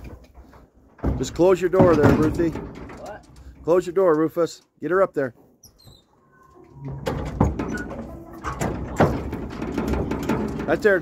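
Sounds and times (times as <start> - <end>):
horse hooves on trailer floor: 0.0 - 4.6, 6.6 - 11.0
trailer rattling: 0.0 - 5.2, 6.6 - 11.0.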